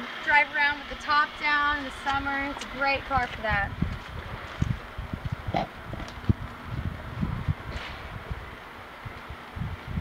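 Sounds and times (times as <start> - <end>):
wind buffeting microphone: 0.8 - 10.0.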